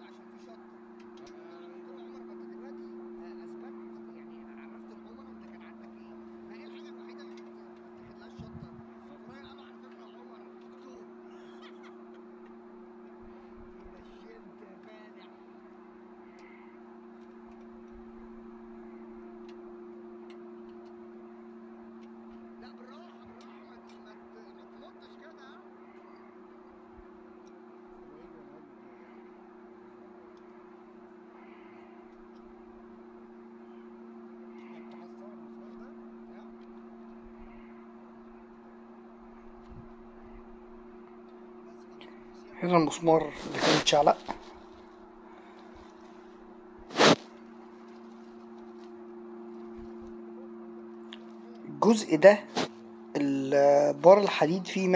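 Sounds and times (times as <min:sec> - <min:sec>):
low two-tone hum: 0:00.0 - 0:54.9.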